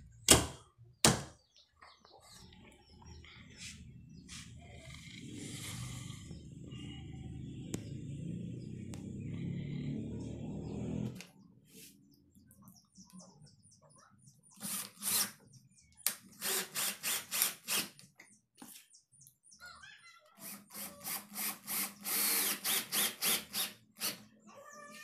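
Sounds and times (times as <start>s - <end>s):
cordless drill driving screws: 14.6s - 15.3s, 16.4s - 17.9s, 20.4s - 24.2s.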